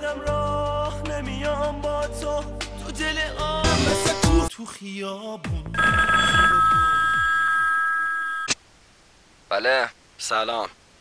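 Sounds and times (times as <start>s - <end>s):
telephone ringing: 5.8s - 8.6s.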